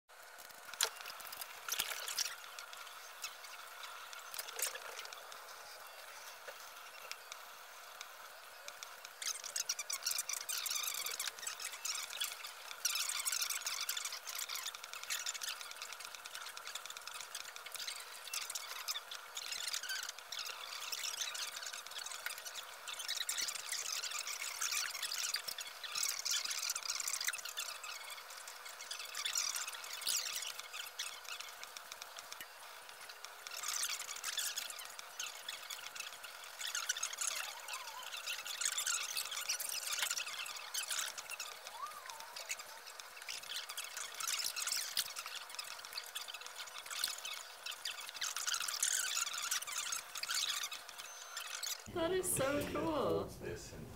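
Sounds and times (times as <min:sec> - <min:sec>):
fast crackly ticking: 0:00.1 - 0:51.9.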